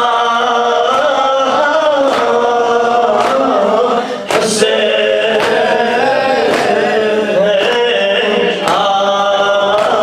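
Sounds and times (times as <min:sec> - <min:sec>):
man chanting into microphone: 0:00.0 - 0:10.0
sharp beat: 0:02.0 - 0:09.0.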